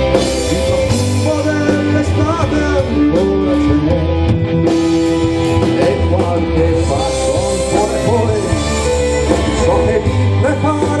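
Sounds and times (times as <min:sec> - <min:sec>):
bass guitar: 0:00.0 - 0:11.0
drum kit: 0:00.0 - 0:11.0
electric guitar: 0:00.0 - 0:11.0
violin: 0:04.2 - 0:11.0.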